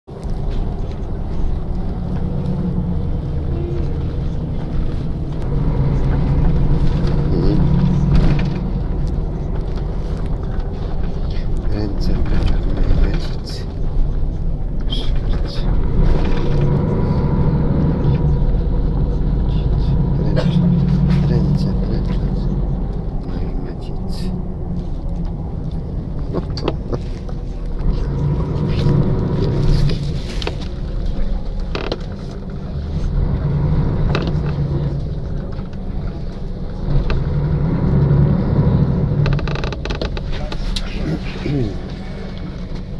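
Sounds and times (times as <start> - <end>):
vehicle rumble from inside: 0.1 - 42.9.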